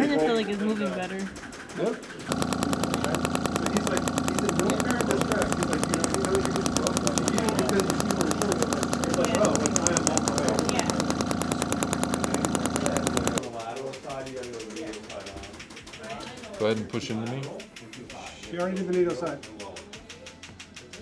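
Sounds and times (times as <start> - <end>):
rapid sharp clicks: 1.2 - 16.5
steady machine hum: 2.3 - 13.4.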